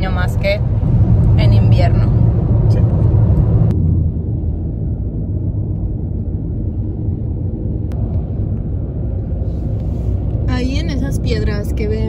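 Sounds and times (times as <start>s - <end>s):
road and engine noise in car: 0.0s - 12.0s.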